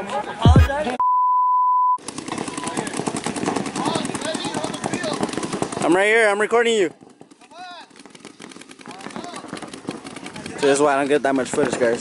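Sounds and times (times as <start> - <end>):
music with deep bass notes: 0.5 - 0.8
steady beep: 0.5 - 2.0.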